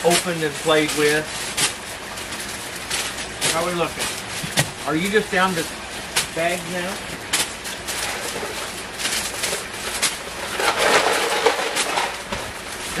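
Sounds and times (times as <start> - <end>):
rustling cardboard and plastic packaging: 0.0 - 13.0.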